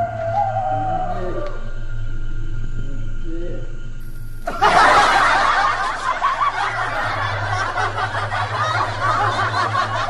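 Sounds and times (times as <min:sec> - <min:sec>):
low steady hum: 0:00.0 - 0:10.0
canned laughter: 0:04.5 - 0:10.0.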